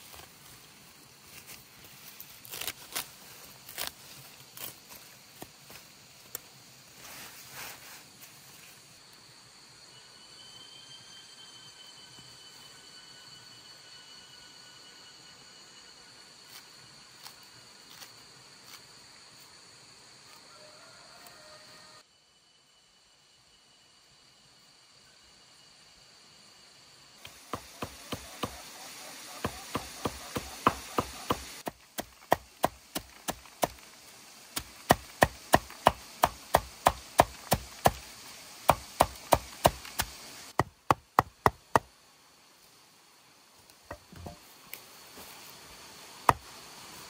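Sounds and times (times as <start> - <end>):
blade chopping strikes: 29.4 - 33.8.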